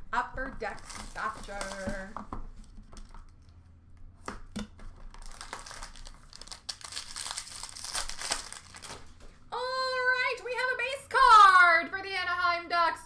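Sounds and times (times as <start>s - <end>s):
wrapper crinkling and tearing: 0.6s - 2.1s, 5.0s - 9.3s.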